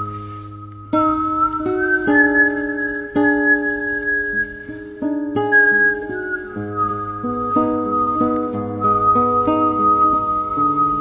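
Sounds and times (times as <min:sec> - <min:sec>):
plucked guitar backing track: 0:00.0 - 0:11.0
woman whistling: 0:00.0 - 0:11.0.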